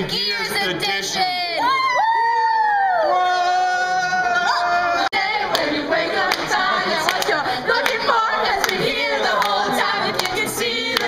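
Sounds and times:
group singing and shouting: 3.2s - 11.0s
hand claps: 6.3s - 8.0s, 8.6s - 8.8s, 10.2s - 10.4s.

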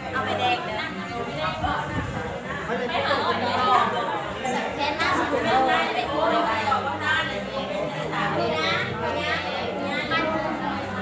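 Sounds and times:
crowd of people talking: 0.0s - 11.0s.

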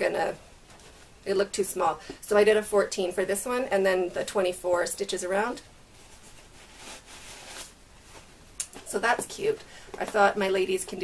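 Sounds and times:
tissue paper rustling: 5.9s - 8.3s.

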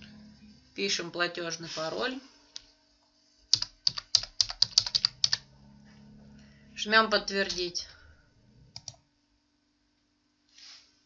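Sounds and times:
typing on computer keyboard: 3.5s - 5.4s, 8.7s - 9.0s.

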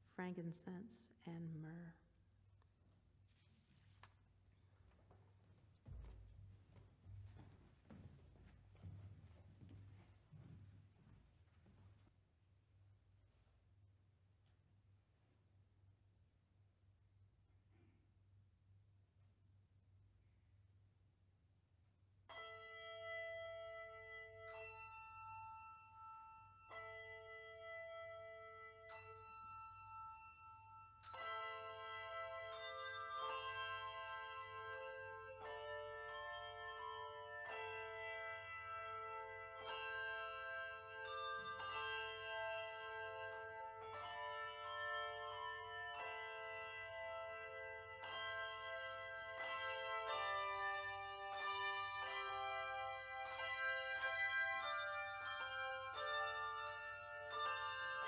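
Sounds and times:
handbell choir ringing chords: 22.3s - 58.0s.

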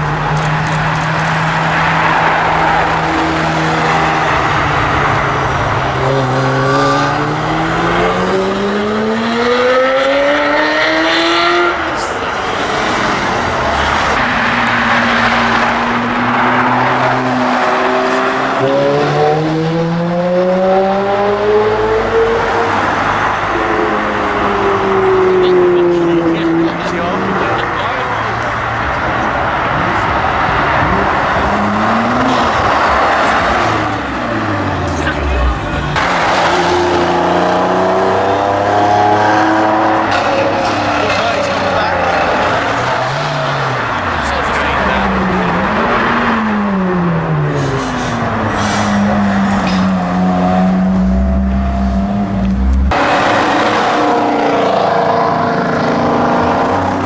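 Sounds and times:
road noise: 0.0s - 57.0s
sports car engines accelerating: 0.0s - 57.0s.

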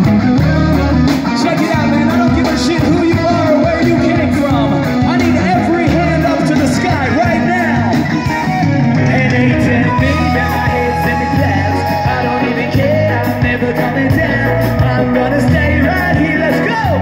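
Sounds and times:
live rock band playing: 0.0s - 17.0s
person singing: 0.0s - 17.0s.

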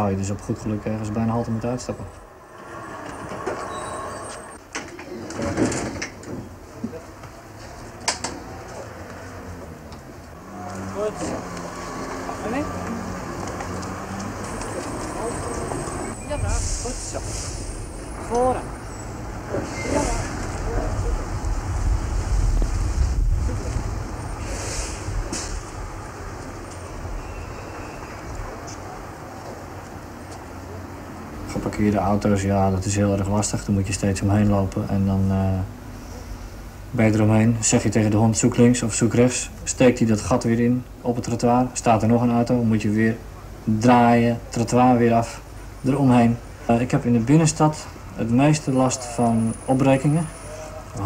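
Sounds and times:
tram at a stop: 0.0s - 37.2s, 46.4s - 51.0s
heavy vehicle rumble: 0.0s - 38.3s
traffic: 0.0s - 51.0s.

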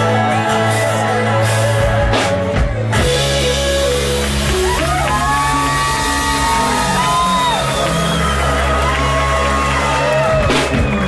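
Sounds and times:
live rock band playing: 0.0s - 11.0s
crowd whooping: 3.3s - 11.0s.

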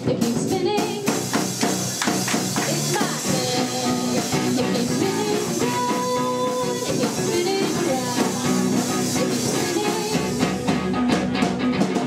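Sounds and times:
rock band playing: 0.0s - 12.0s.

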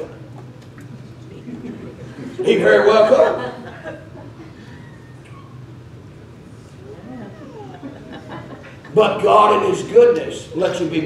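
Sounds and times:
low steady room hum: 0.0s - 11.0s.

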